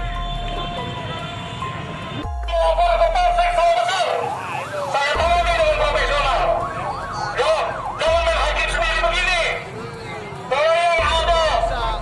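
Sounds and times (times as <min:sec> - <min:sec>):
police siren wailing: 0:00.0 - 0:12.0
crowd voices: 0:02.8 - 0:12.0.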